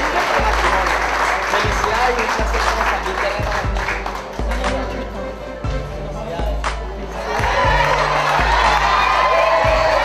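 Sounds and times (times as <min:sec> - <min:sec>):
audience applauding: 0:00.0 - 0:04.9, 0:07.2 - 0:10.0
background music: 0:00.0 - 0:10.0.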